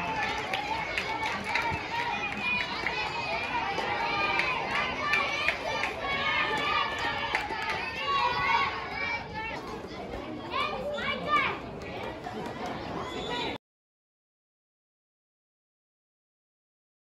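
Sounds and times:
children shouting: 0.0 - 13.6.

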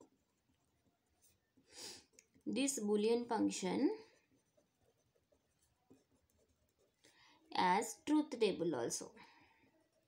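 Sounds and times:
person speaking: 2.5 - 4.1
pen scratching on paper: 3.6 - 7.0.

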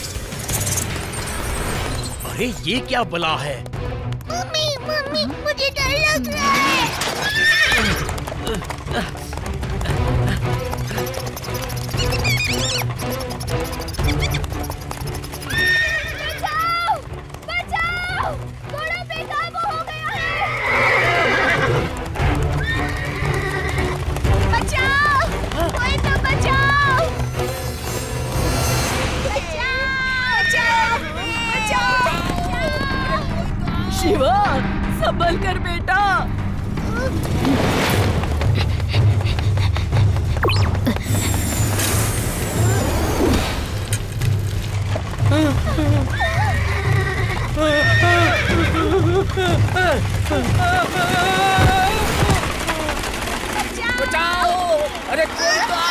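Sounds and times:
heavy hoofbeats: 2.7 - 28.6, 38.1 - 42.6, 43.7 - 55.9
horse whinnying: 6.5 - 8.3, 10.9 - 16.8, 20.1 - 24.0, 45.3 - 53.2
people crying out: 45.4 - 53.1.

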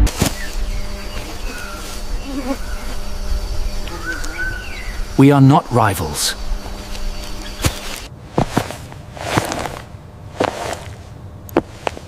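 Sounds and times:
insect drone: 0.1 - 11.4
bird chirps: 0.3 - 5.2, 7.0 - 8.0.

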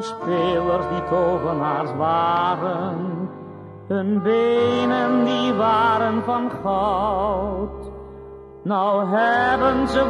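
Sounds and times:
male tenor singing with vibrato: 0.0 - 7.7, 8.6 - 10.0
pop ballad accompaniment: 0.0 - 10.0.

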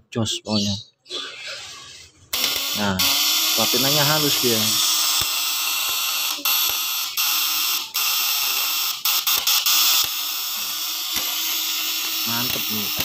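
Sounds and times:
electric contact points buzzing: 2.3 - 13.0.

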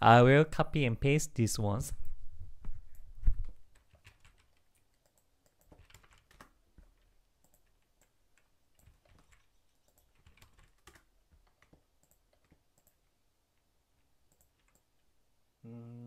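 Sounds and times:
keyboard keystrokes and clicks: 3.7 - 13.1, 14.3 - 15.0.

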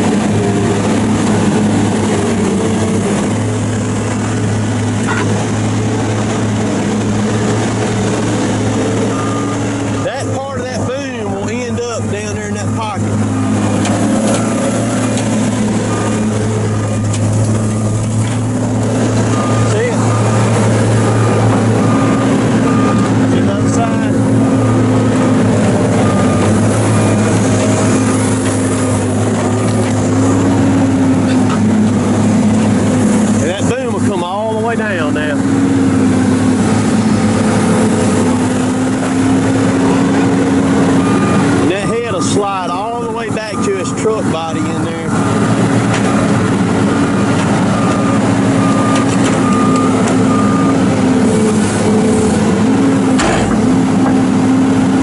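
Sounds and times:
heavy diesel engine running: 0.0 - 55.0.

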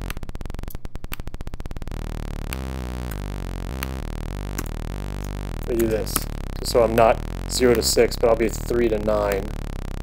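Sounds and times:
rapid low buzz: 0.0 - 10.0
synthesized random melody notes: 1.4 - 10.0.

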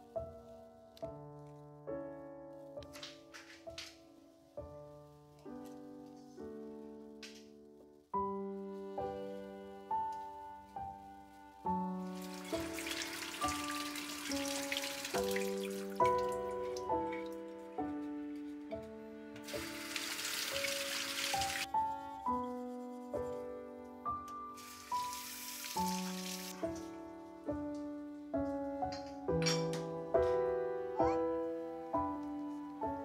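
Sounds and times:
gentle piano music: 0.0 - 33.0.

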